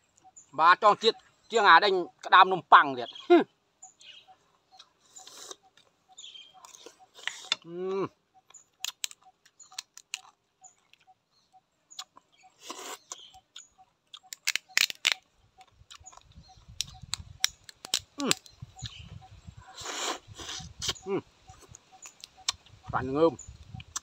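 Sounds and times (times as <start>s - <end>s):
crab shells cracking: 14.2s - 15.2s, 16.8s - 18.5s.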